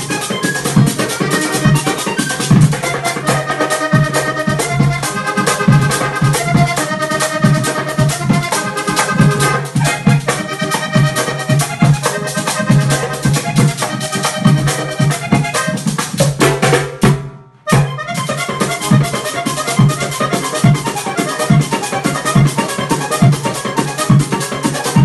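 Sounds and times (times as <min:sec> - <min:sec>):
accordion playing lively melody: 0:00.0 - 0:25.0
steady drum beat: 0:00.0 - 0:25.0.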